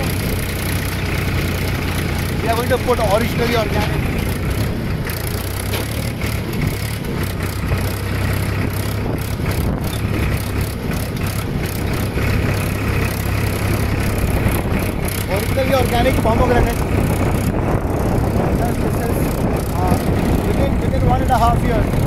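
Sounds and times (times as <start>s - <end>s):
tractor diesel engine running: 0.0s - 22.0s.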